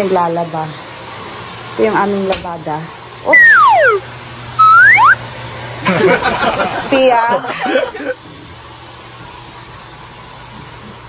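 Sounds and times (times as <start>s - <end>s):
high-pitched voice gliding down: 3.3s - 4.0s.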